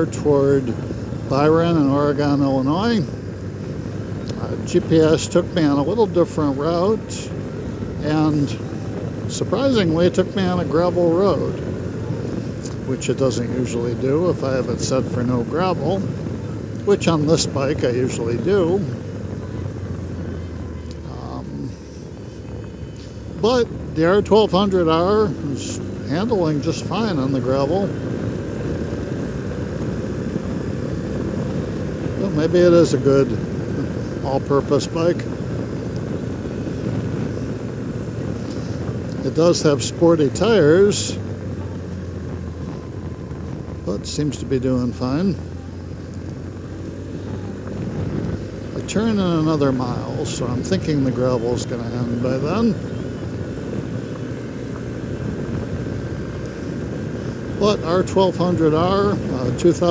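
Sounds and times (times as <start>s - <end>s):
motorcycle engine cruising: 0.0s - 59.9s
tyres on gravel road: 0.0s - 59.9s.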